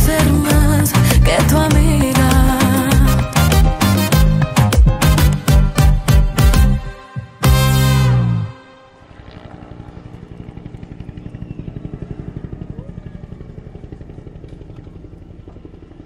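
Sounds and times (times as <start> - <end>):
loud music chord: 3.0 - 9.5.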